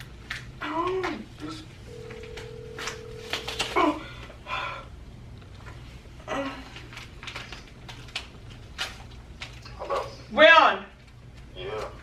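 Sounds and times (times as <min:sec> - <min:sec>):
phone ringback tone: 0:01.9 - 0:03.8.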